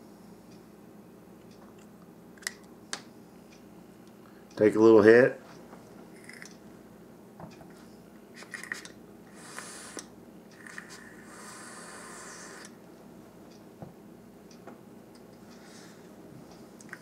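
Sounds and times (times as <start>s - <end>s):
breathy hiss of exhaled vapor: 9.3s - 10.1s, 10.9s - 12.8s.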